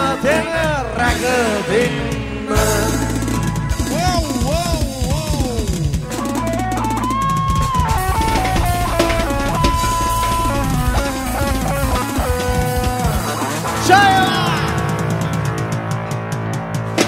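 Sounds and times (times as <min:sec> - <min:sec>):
bass guitar: 0:00.0 - 0:17.0
drum kit: 0:02.6 - 0:17.0.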